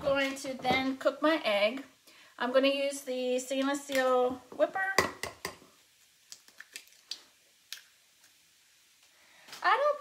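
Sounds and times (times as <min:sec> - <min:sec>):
egg cracking on glass bowl: 0:06.3 - 0:07.9.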